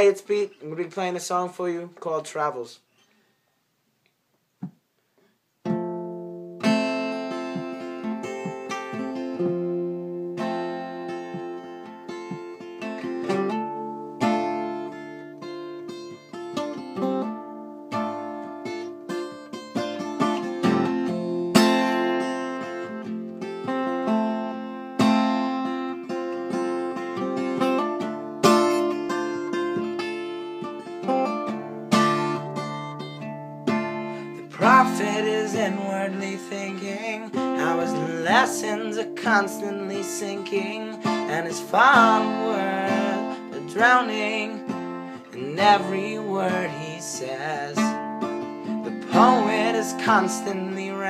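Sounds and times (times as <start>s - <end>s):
acoustic guitar chords and picking: 0.0s - 3.1s, 4.6s - 51.0s.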